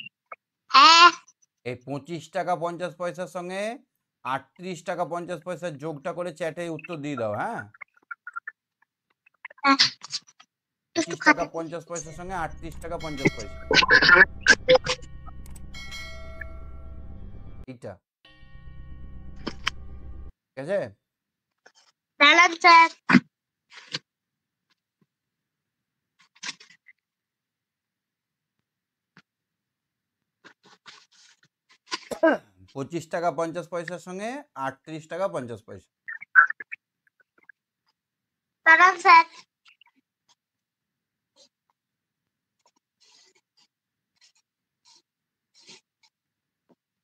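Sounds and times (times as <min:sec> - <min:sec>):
man speaking: 0:01.7 - 0:07.8, 0:11.0 - 0:13.6, 0:32.7 - 0:35.8
brief high-pitched sounds: 0:11.3 - 0:17.4
bell ringing: 0:12.0 - 0:17.7.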